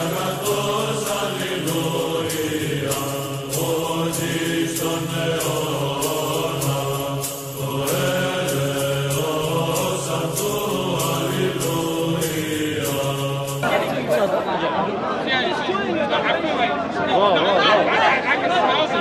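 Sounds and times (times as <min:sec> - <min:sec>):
choir chanting over drone: 0:00.0 - 0:14.6
crowd talking: 0:12.9 - 0:19.0.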